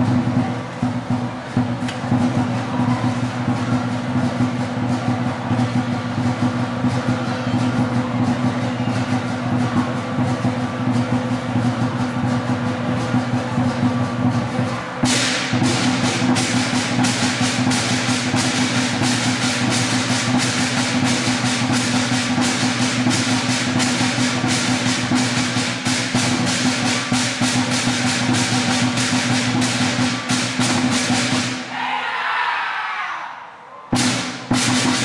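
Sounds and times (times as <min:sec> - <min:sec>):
large drum beating: 0:00.0 - 0:31.8, 0:34.0 - 0:35.0
cymbals clashing: 0:00.0 - 0:32.0, 0:33.9 - 0:35.0.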